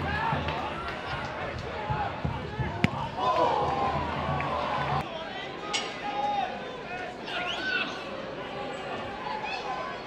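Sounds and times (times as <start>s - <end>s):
crowd and players shouting: 0.0s - 10.0s.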